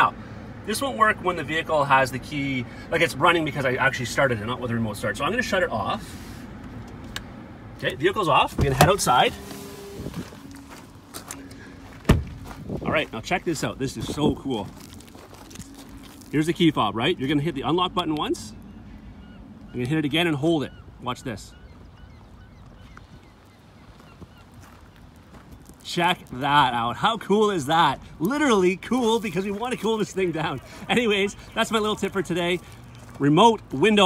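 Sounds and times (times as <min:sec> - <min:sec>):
footsteps on gravel: 0:09.1 - 0:17.5, 0:22.2 - 0:27.0, 0:28.2 - 0:34.0
faint bird chirps: 0:18.5 - 0:25.0.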